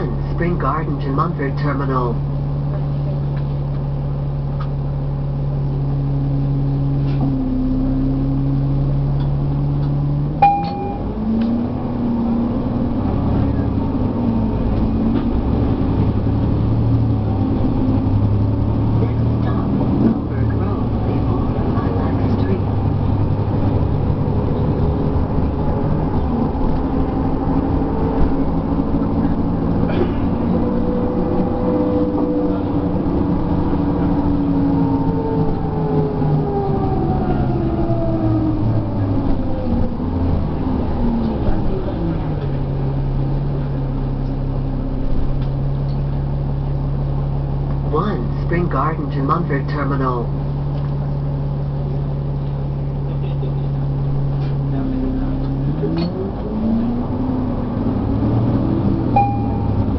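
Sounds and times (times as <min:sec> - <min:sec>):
bus diesel engine: 0:00.0 - 0:59.9
short tone: 0:10.4 - 0:11.4, 0:59.1 - 0:59.9.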